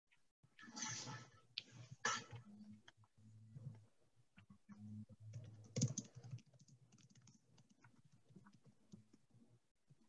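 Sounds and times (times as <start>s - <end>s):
typing on a keyboard: 5.3s - 9.1s.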